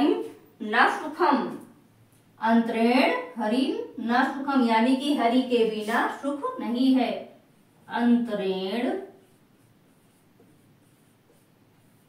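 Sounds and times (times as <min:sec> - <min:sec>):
marker pen on whiteboard: 0:00.0 - 0:12.0.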